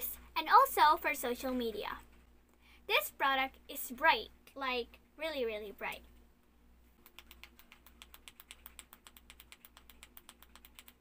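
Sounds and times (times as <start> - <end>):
faint low hum: 0.0 - 11.0
rapid ratcheting clicks: 7.1 - 11.0.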